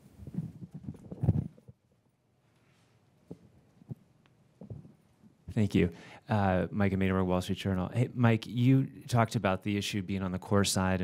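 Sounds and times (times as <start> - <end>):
microphone handling thumps: 0.0 - 1.8.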